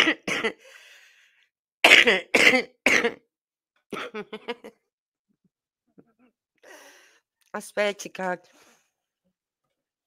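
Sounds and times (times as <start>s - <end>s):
person coughing: 0.0s - 0.6s, 1.8s - 3.3s, 3.9s - 4.7s.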